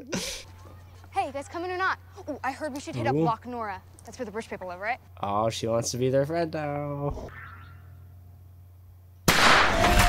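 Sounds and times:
dense loud crash: 0:09.3 - 0:10.0
sudden loud bang: 0:09.3 - 0:10.0.

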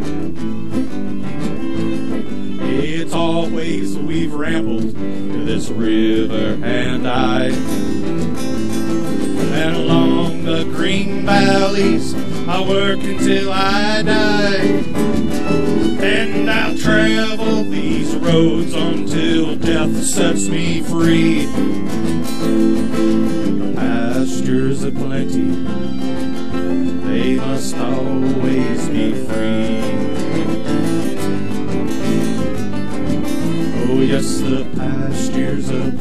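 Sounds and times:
acoustic guitars strumming: 0:00.0 - 0:36.0
fiddle: 0:00.0 - 0:36.0.

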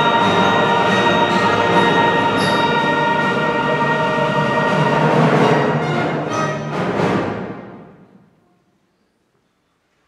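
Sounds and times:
orchestra and choir sustained chord: 0:00.0 - 0:06.3.

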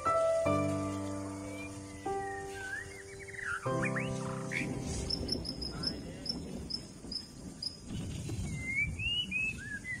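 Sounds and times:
birds chirping: 0:00.0 - 0:10.0
whistled bird notes: 0:01.2 - 0:10.0.

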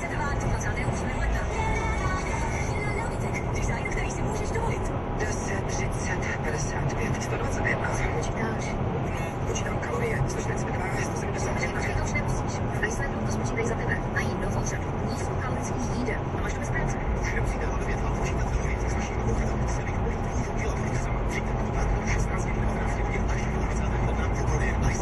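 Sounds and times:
car road and engine noise: 0:00.0 - 0:25.0.

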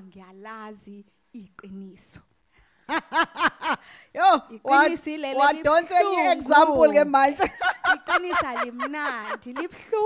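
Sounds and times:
laughter: 0:02.9 - 0:03.8, 0:07.4 - 0:10.0.

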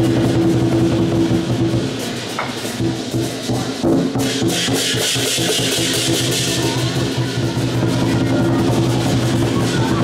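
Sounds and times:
cymbals clashing: 0:00.0 - 0:10.0
large drum beating: 0:00.0 - 0:10.0.

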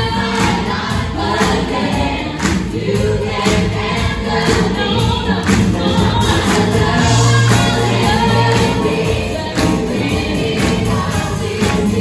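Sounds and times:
band playing: 0:00.0 - 0:12.0
pop choir singing: 0:00.0 - 0:12.0.

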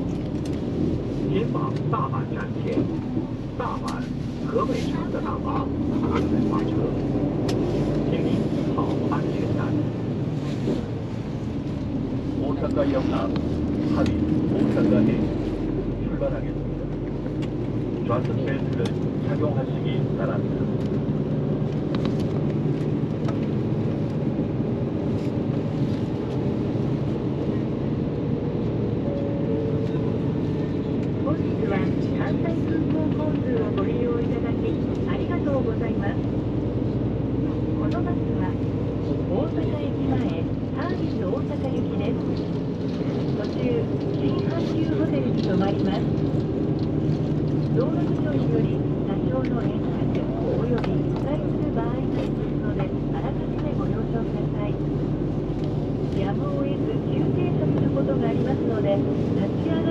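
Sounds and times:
bus engine drone: 0:00.0 - 0:59.9
road noise: 0:00.0 - 0:59.9.

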